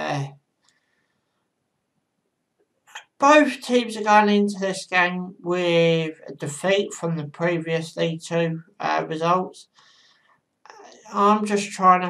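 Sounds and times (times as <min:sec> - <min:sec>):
man sharply inhaling: 0:09.7 - 0:10.3.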